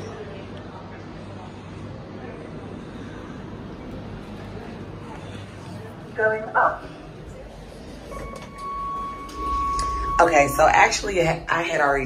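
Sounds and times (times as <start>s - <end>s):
low rumble: 7.1s - 12.0s
electronic beep tone: 8.1s - 10.7s.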